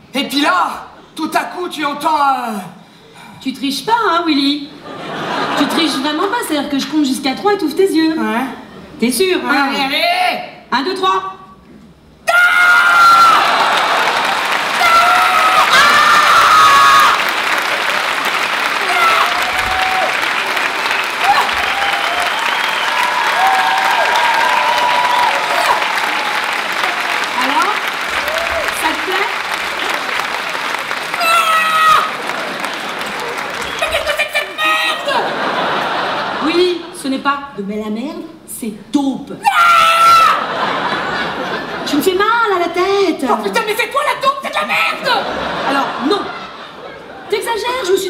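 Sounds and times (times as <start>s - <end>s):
audience applauding and cheering: 12.6s - 36.4s
whoops: 14.7s - 17.3s, 18.8s - 20.3s, 21.0s - 27.1s, 28.2s - 28.8s, 31.1s - 32.2s.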